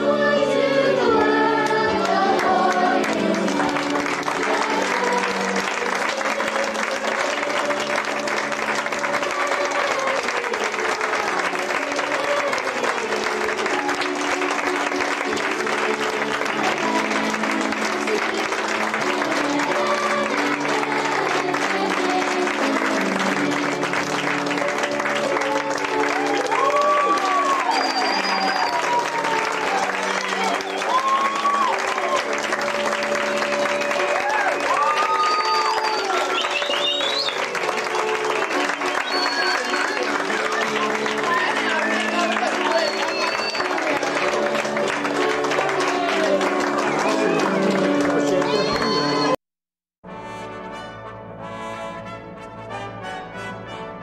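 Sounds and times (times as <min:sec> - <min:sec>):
instrumental music: 0:00.0 - 0:49.4
audience applauding: 0:02.0 - 0:49.4.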